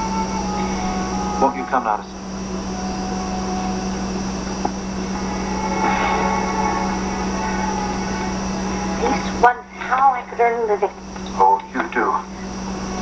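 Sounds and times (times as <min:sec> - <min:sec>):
television hum and hiss: 0:00.0 - 0:13.0.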